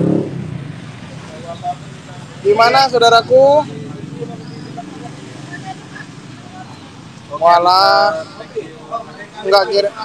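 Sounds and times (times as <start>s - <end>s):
passing vehicle engine hum: 0.0s - 10.0s
street background noise: 0.0s - 10.0s.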